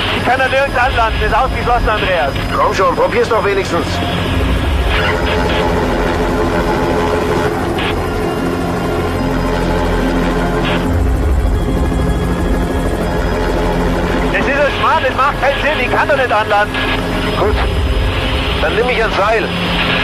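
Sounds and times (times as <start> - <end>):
background music: 0.0 - 20.0
helicopter running: 0.0 - 20.0.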